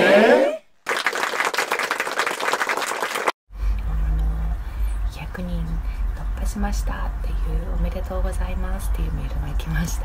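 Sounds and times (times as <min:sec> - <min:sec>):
crowd applause: 0:00.0 - 0:03.4.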